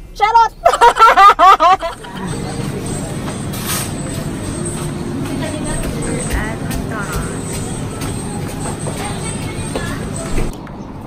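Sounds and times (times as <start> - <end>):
indistinct chatter: 0.9 - 10.6
kitchen noise: 1.4 - 10.5
music: 2.2 - 10.5.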